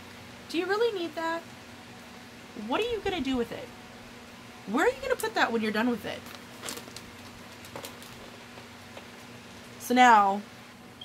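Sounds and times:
faint steady hum: 0:00.0 - 0:11.0
plastic bag rustle: 0:06.0 - 0:09.8.

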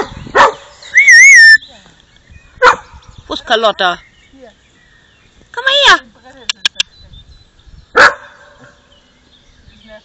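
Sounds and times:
dog barking: 0:00.0 - 0:00.7, 0:02.6 - 0:03.0, 0:08.0 - 0:08.8.

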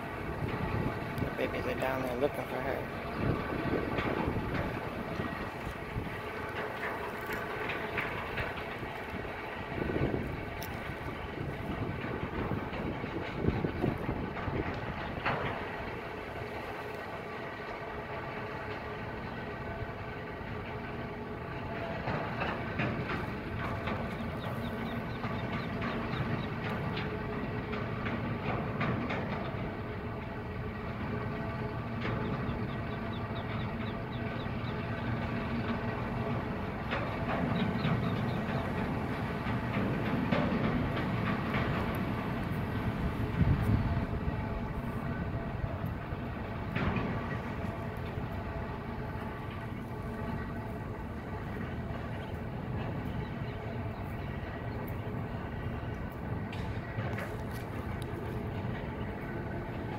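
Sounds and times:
mechanical rumble with hum: 0:00.0 - 0:59.9.

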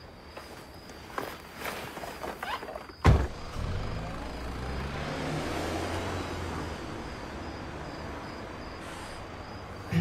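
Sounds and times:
car engine pulling away: 0:03.1 - 0:10.0.

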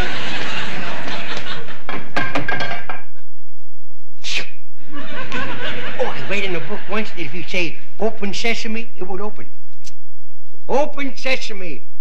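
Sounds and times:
audience laughing: 0:00.0 - 0:02.2, 0:04.8 - 0:08.2.

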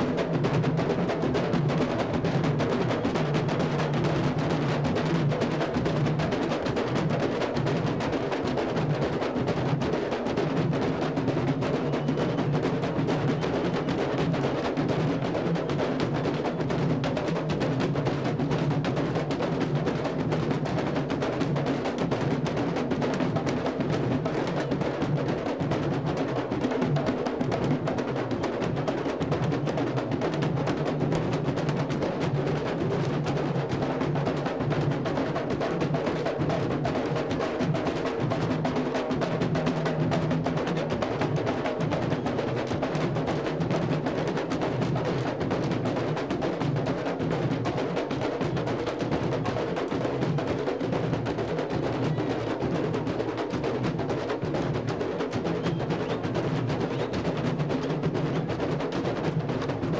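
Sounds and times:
drum line playing dense rhythm: 0:00.0 - 0:59.9.

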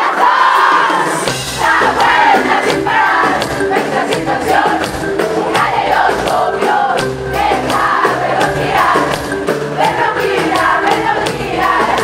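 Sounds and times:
amplified live concert music: 0:00.0 - 0:12.0.

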